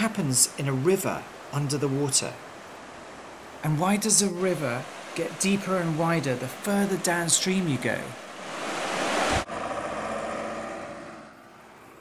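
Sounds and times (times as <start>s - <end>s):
river rushing over rocks: 0.0s - 9.5s.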